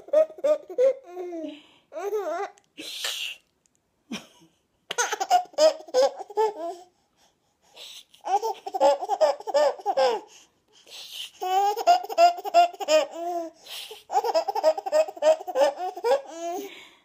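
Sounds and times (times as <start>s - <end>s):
baby laughing: 0.0s - 2.6s, 4.9s - 6.9s, 8.2s - 10.3s, 11.3s - 16.7s.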